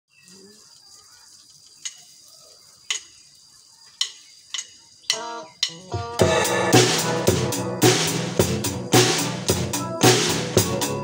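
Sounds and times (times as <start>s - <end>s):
steady hiss: 0.1s - 11.0s
drumsticks clicking: 4.0s - 5.9s
drum kit playing: 5.1s - 11.0s.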